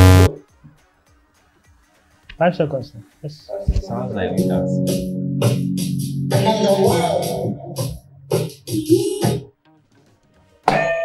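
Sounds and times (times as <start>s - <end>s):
low harsh game-show buzzer: 0.0s - 0.4s.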